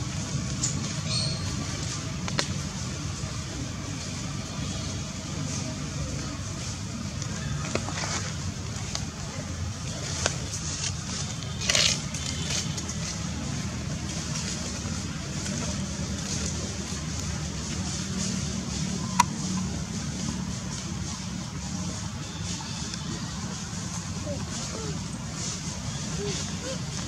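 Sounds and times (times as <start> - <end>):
low outdoor rumble: 0.0 - 27.0
crunching rustle: 5.0 - 27.0.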